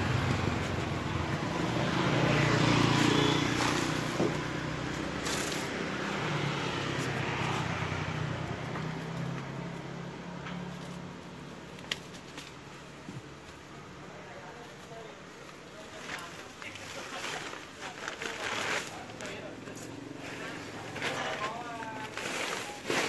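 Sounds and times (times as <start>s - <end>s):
vehicle engine humming: 0.0s - 22.8s
street noise: 0.0s - 23.0s.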